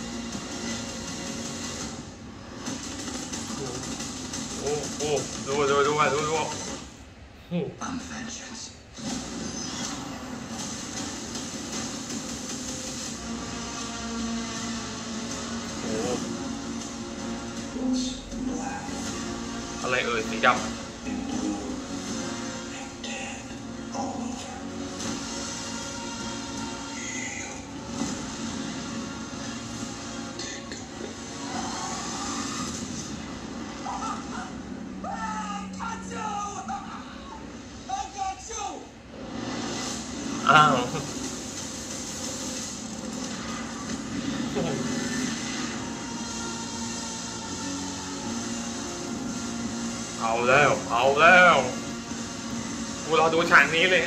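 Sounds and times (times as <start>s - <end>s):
trailer music: 0.0s - 7.0s, 9.0s - 38.2s, 39.0s - 54.0s
dense machine-like noise: 0.0s - 54.0s.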